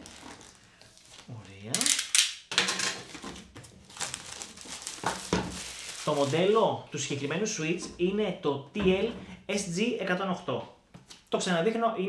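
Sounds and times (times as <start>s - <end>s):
plastic wrap crinkling: 0.0s - 7.2s.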